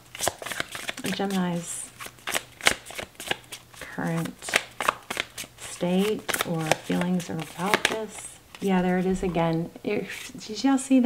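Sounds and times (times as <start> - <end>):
cards being shuffled: 0.0 - 9.4.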